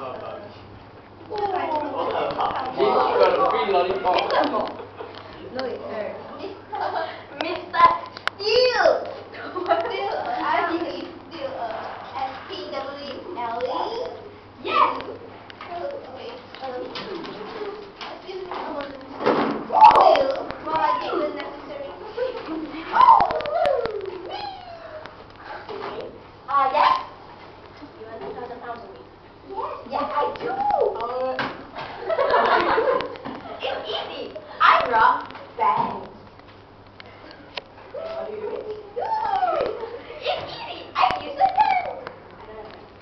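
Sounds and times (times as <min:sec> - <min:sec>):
girls' voices: 0:01.2 - 0:36.2, 0:37.1 - 0:43.0.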